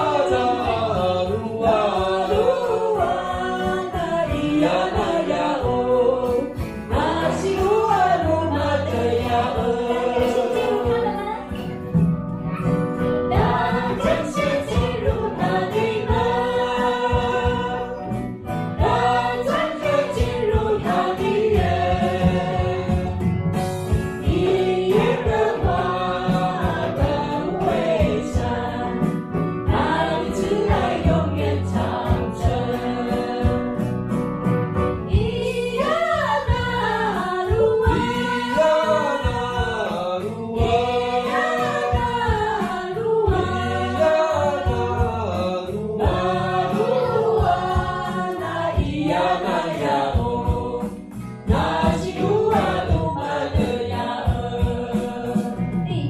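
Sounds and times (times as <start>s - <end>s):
choir singing: 0.0s - 11.7s, 13.2s - 23.3s, 24.2s - 34.2s, 35.1s - 56.0s
woman singing into a microphone: 0.0s - 11.9s, 13.3s - 18.1s, 18.8s - 23.1s, 35.1s - 45.4s, 46.0s - 56.0s.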